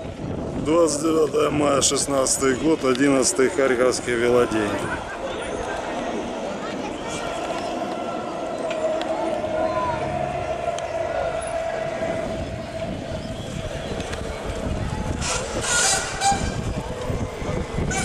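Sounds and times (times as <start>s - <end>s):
crowd hubbub: 0.0s - 18.0s
distant voices: 0.0s - 18.0s
long steady tone: 5.1s - 18.0s.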